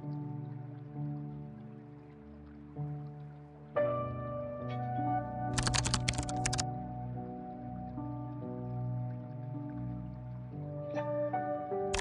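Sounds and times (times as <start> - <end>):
soft background music: 0.0 - 12.0
computer keyboard typing: 5.6 - 6.6.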